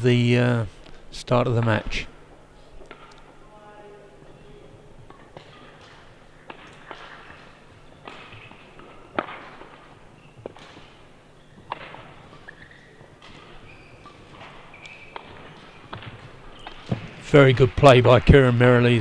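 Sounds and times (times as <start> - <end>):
rackets striking shuttlecock: 2.8 - 3.4, 4.6 - 17.2
shoes squeaking on court floor: 4.2 - 17.2.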